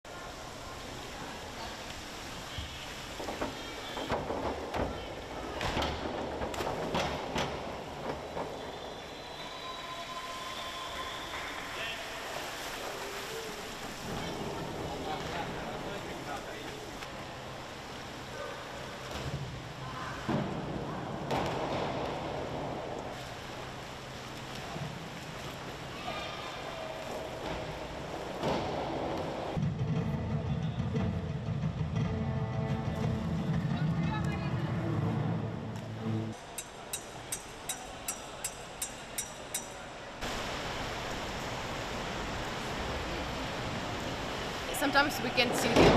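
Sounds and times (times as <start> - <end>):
water splashing: 0.0 - 29.6, 36.3 - 45.9.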